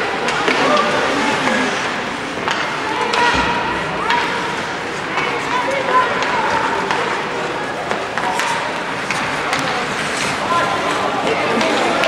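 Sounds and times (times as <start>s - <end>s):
skates scraping on ice: 4.5s - 12.0s
stick hitting puck: 7.9s - 10.4s.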